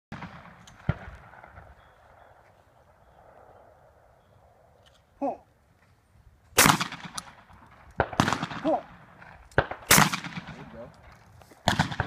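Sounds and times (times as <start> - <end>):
outdoor background noise: 0.1 - 12.0
shotgun bang with echo: 6.6 - 7.2, 8.0 - 8.8, 9.6 - 10.7, 11.7 - 12.0.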